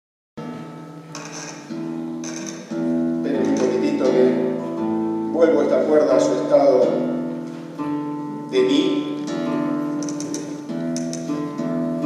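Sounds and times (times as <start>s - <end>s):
guitar strings plucked: 0.4s - 5.2s, 9.1s - 12.0s.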